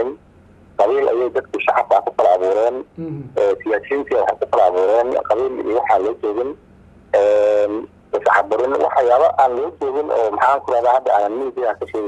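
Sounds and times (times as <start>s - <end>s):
man talking: 0.8s - 6.6s, 7.2s - 12.0s.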